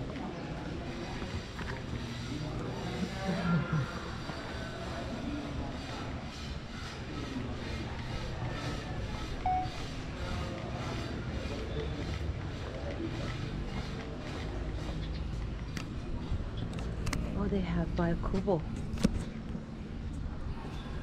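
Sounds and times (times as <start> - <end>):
distant voices: 0.0 - 21.0
faint music: 0.0 - 21.0.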